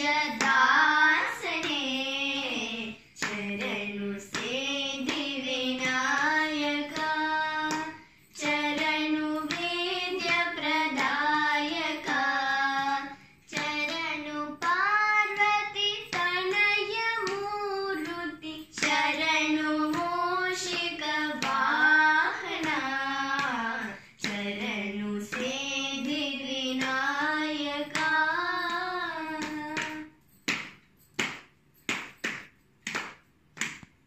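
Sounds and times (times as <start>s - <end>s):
girls singing a devotional song: 0.0s - 30.7s.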